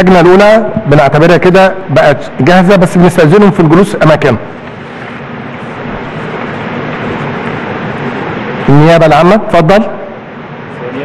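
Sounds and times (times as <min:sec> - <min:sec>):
crowded room noise: 0:00.0 - 0:11.0.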